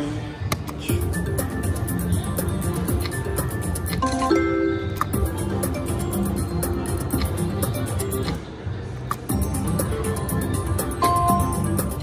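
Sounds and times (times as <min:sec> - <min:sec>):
casino background music: 0:00.6 - 0:12.0.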